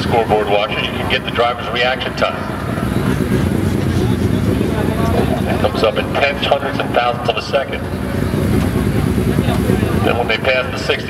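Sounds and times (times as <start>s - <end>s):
car engines droning: 0.0s - 11.0s.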